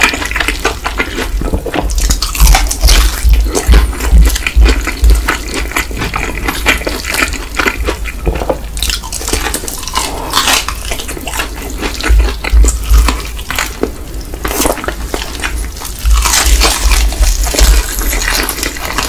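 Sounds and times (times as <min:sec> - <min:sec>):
crunchy chewing of fried chicken: 0:00.0 - 0:19.0
heavy low thumps: 0:01.6 - 0:05.3.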